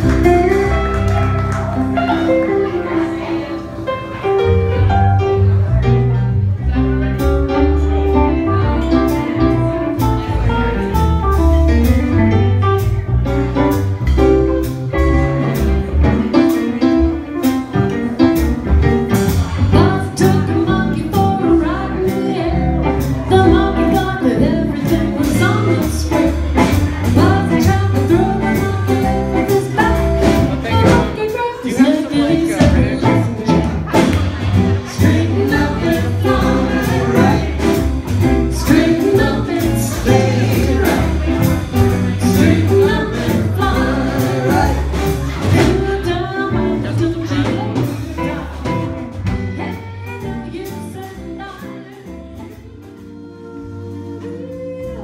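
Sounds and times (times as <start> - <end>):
electric guitar: 0.0 - 31.7
band playing blues: 0.0 - 55.0
woman singing: 19.7 - 33.7, 34.9 - 37.9, 38.5 - 41.5, 42.2 - 48.8, 49.4 - 55.0.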